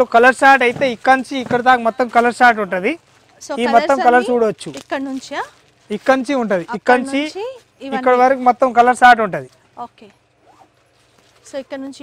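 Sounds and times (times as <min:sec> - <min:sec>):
man speaking loudly: 0:03.6 - 0:04.7, 0:07.9 - 0:09.4.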